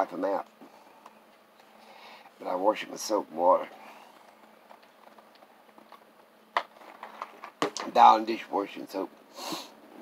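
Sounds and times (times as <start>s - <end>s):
person speaking: 2.4s - 4.4s.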